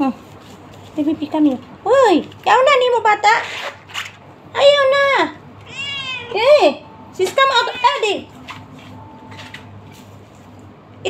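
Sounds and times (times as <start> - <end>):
cat meowing loudly: 5.6 - 6.4.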